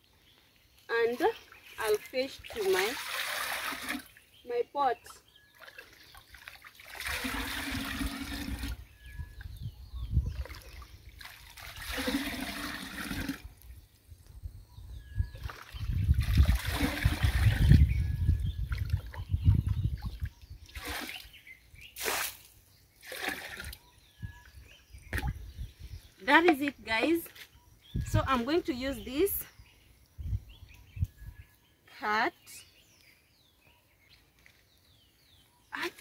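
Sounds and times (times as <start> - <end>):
water splashing from scooping: 1.4 - 4.2, 5.6 - 8.8, 10.4 - 13.5, 15.4 - 17.9, 18.6 - 21.3, 22.0 - 23.8
water pouring into clay pot: 2.5 - 4.2, 5.6 - 9.0, 10.3 - 13.6, 15.4 - 21.2, 23.0 - 23.8.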